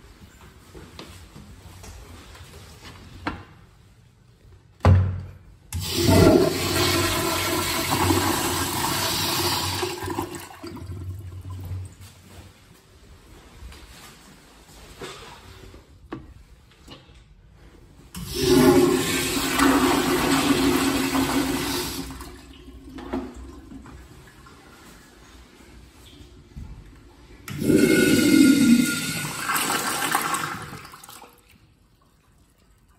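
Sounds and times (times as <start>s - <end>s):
urinal flushing: 5.7s - 12.1s, 18.1s - 32.9s
toilet water rushing: 5.8s - 11.6s, 18.2s - 24.4s, 27.5s - 31.4s.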